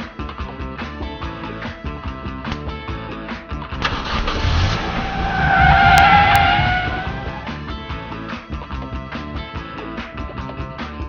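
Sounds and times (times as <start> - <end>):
tyres squealing: 3.8 - 7.8
low rumble: 3.8 - 8.2.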